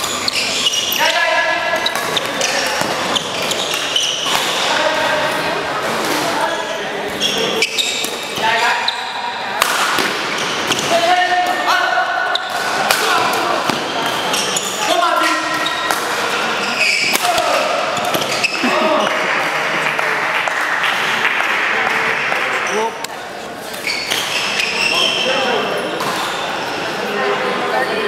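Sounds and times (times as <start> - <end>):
shoes squeaking on floor: 0.0 - 5.0, 6.4 - 9.3, 10.2 - 11.0, 12.3 - 12.6, 13.6 - 17.3, 17.9 - 18.8, 23.7 - 27.0
murmur of voices: 0.0 - 28.0.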